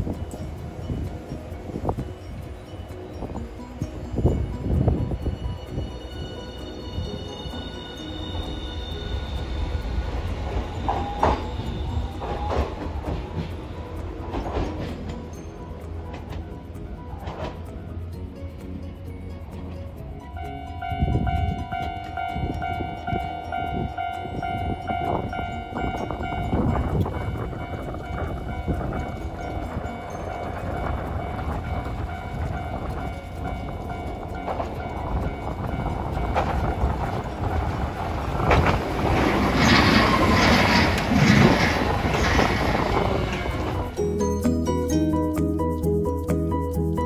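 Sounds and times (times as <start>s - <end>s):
steady ringing tone: 0.0s - 18.3s, 20.1s - 38.3s
falling whine of streetcar: 0.0s - 44.3s
streetcar wheels on rails: 0.0s - 47.0s.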